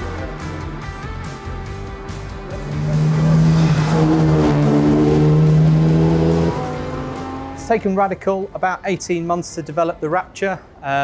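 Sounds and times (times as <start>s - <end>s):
car engine pulling hard: 2.5s - 7.8s.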